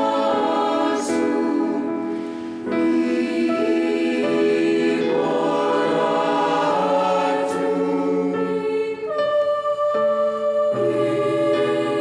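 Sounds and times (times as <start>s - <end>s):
choir singing sacred piece: 0.0s - 12.0s.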